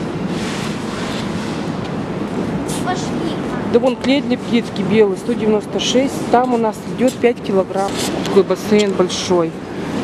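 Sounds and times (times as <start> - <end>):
store background rushing noise: 0.0 - 10.0.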